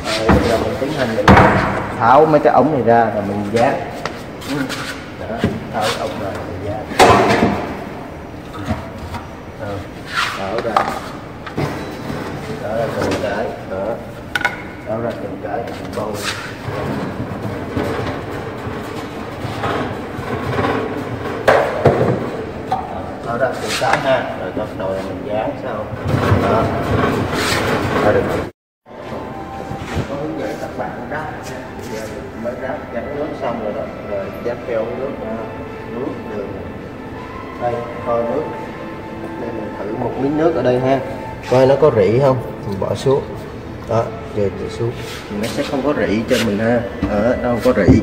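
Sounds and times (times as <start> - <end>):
man speaking: 0.0 - 7.5, 12.5 - 14.1, 28.0 - 36.8, 37.4 - 48.0
plastic pipes rattling and scraping: 15.7 - 22.8.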